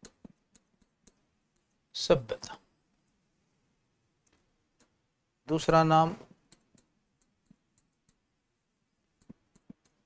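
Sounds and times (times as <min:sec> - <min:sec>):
stylus tapping on whiteboard screen: 0:00.0 - 0:01.8, 0:06.2 - 0:08.3, 0:09.1 - 0:10.0.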